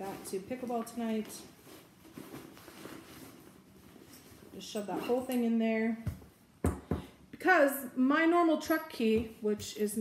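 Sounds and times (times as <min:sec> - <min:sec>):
fabric bag rustling: 0:00.0 - 0:05.6.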